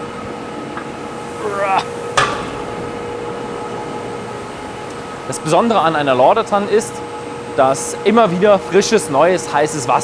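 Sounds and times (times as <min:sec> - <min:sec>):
steady machinery hum: 0:00.0 - 0:10.0
sharp metal clank of hatch: 0:02.2 - 0:02.8.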